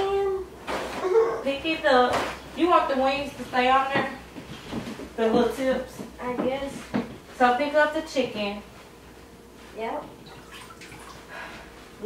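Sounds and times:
water sloshing and dripping in sink: 0:10.1 - 0:11.3.

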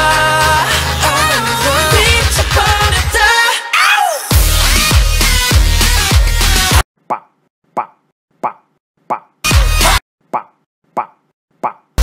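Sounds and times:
electronic pop music burst: 0:00.0 - 0:03.6, 0:04.2 - 0:06.8, 0:09.4 - 0:10.0.

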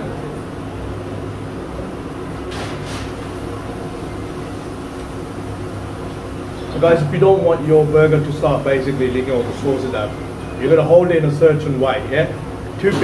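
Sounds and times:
ventilation hum: 0:00.0 - 0:13.0.

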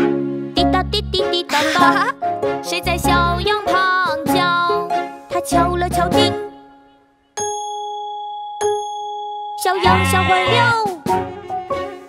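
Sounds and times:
alarm clock bell ding: 0:07.4 - 0:10.4.

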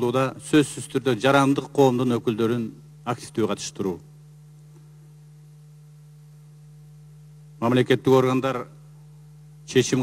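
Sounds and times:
faint low electrical hum: 0:00.0 - 0:10.0.

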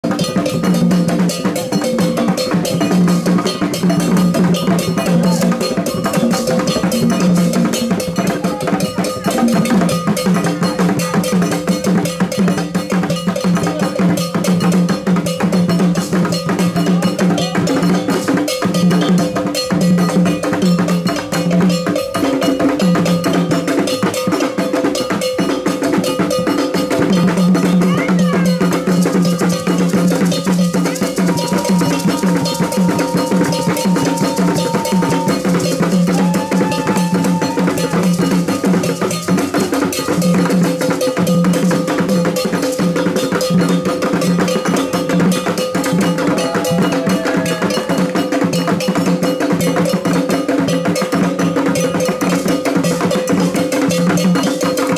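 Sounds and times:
drum ensemble playing: 0:00.0 - 0:54.9
metal bell struck: 0:25.0 - 0:49.5
high held notes: 0:28.2 - 0:38.8.

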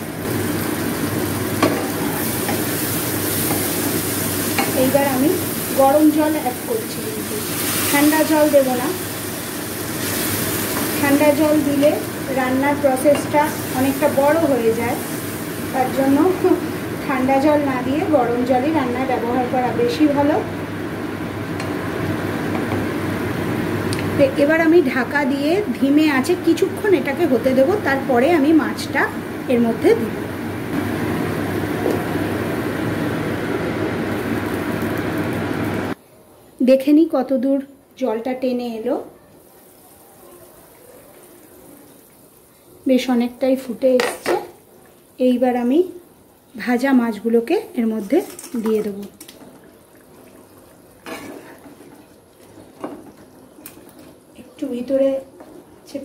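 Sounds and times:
water pouring into sizzling oil: 0:00.0 - 0:17.4, 0:39.4 - 0:43.4, 0:44.7 - 0:54.4.

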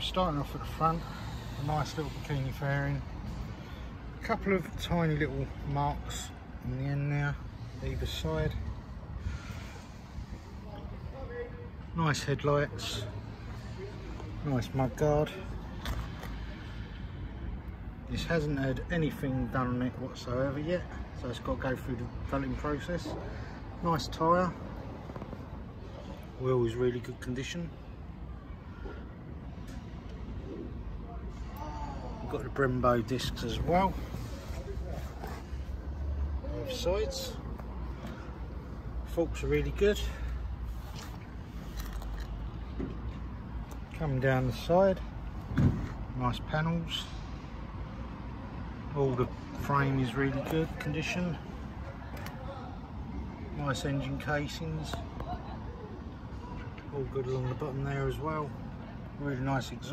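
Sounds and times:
low steady background rumble: 0:00.0 - 0:59.9.

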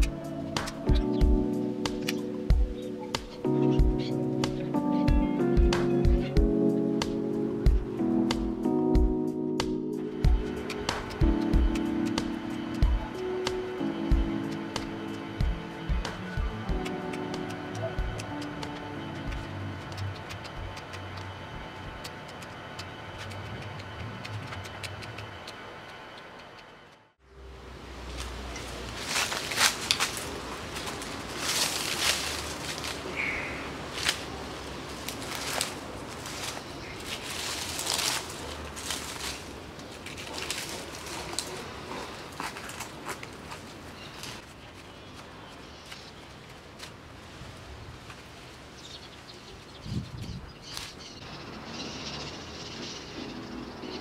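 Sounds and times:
soft background music: 0:00.0 - 0:27.5, 0:52.2 - 0:54.0
hands rustling soil and dry leaves: 0:28.0 - 0:51.1.

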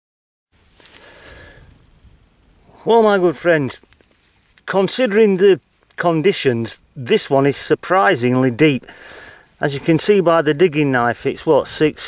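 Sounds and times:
light rustling: 0:00.6 - 0:02.2, 0:03.7 - 0:04.9.

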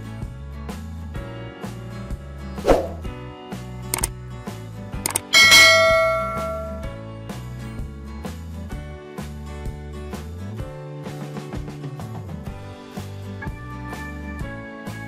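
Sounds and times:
background music with steady beat: 0:00.0 - 0:15.0
short swoosh: 0:02.6 - 0:03.1
click: 0:03.9 - 0:04.2, 0:05.0 - 0:05.3
loud bell ding: 0:05.1 - 0:07.0.

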